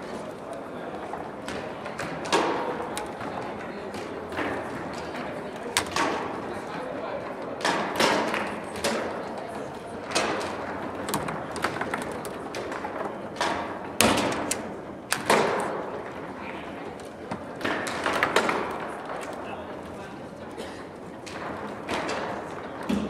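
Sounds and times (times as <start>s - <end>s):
foosball ball clacks and thuds: 7.2s - 9.3s, 10.0s - 16.4s, 17.0s - 19.4s.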